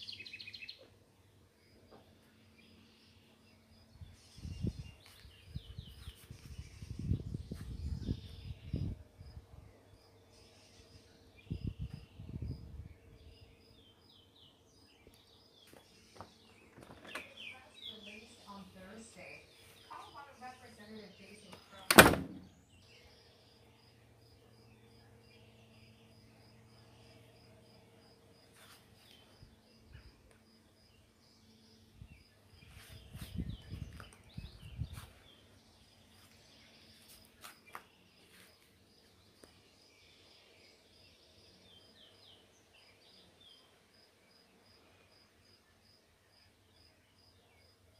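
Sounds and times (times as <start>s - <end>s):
door shutting with a knock: 21.9s - 22.5s.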